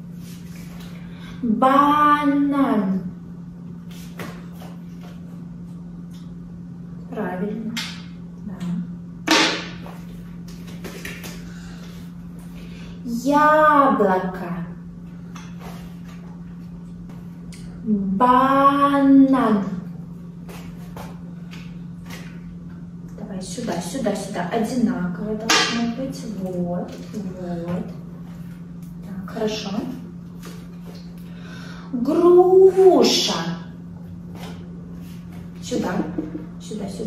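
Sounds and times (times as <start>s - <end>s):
steady low hum: 0.0s - 37.0s.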